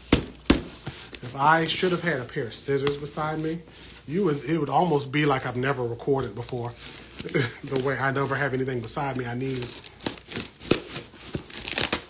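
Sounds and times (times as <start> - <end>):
cardboard box tearing: 9.6 - 12.0.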